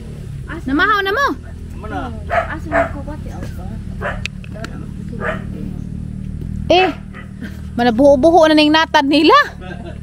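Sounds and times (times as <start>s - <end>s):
dog barking: 1.4s - 3.2s, 4.0s - 4.3s, 5.2s - 5.6s, 6.7s - 7.4s.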